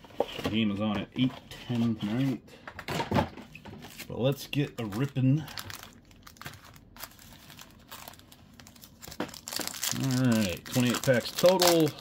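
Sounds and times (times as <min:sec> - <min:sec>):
foil wrappers crinkling: 0:03.9 - 0:12.0.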